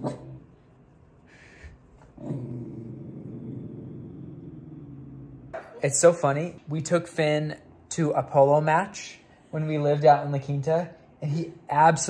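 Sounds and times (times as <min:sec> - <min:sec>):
dog growling: 0:02.2 - 0:05.6.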